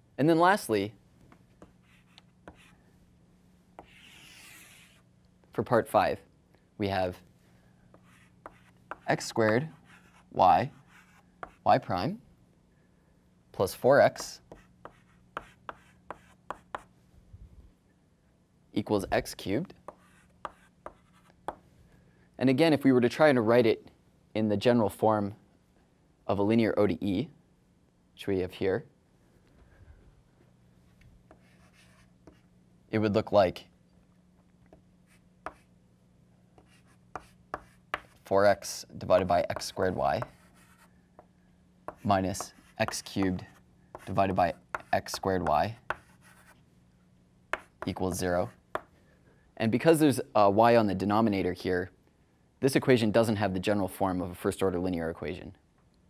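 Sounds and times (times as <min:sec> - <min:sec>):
chalk scraping on blackboard: 0:01.6 - 0:02.7, 0:03.8 - 0:05.0, 0:07.9 - 0:11.6
chalk tapping blackboard: 0:01.6 - 0:02.7, 0:07.9 - 0:10.2, 0:10.8 - 0:11.6, 0:14.2 - 0:16.9, 0:19.9 - 0:21.6, 0:35.4 - 0:35.7, 0:36.6 - 0:38.2, 0:41.9 - 0:46.6, 0:47.5 - 0:48.0.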